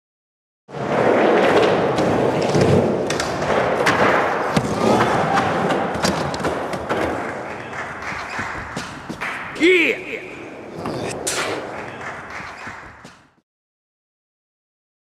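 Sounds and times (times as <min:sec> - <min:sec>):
skateboard rolling: 0:00.7 - 0:07.5
skateboard trucks grinding: 0:00.7 - 0:07.6
skateboard wheels knocking: 0:00.8 - 0:09.5.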